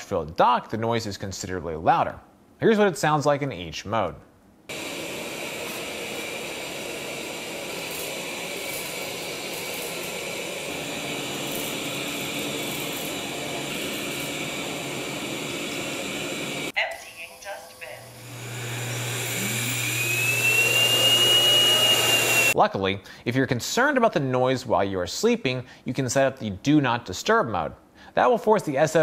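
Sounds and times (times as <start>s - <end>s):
robot vacuum whirring: 4.7s - 22.6s
dock self-emptying motor: 18.1s - 22.6s.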